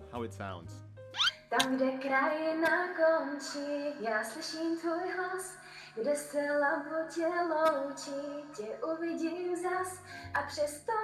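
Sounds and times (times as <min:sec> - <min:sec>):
woman singing unaccompanied: 0:01.4 - 0:11.0.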